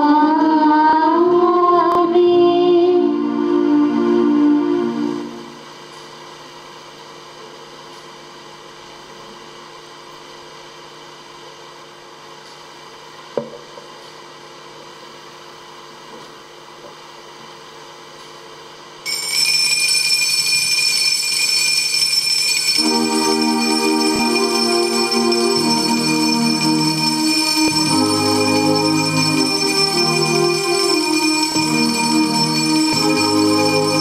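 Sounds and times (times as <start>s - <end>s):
altar bells ringing: 19.1s - 34.0s.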